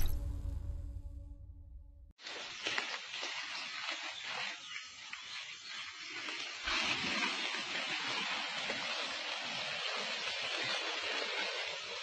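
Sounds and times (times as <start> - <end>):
body scraping through wet mud: 2.2 - 12.0.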